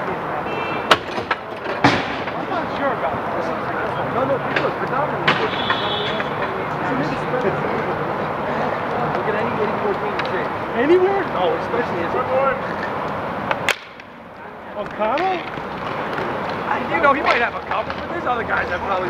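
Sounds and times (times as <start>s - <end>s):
city background noise: 0.0s - 19.0s
players' voices and chatter: 0.0s - 19.0s.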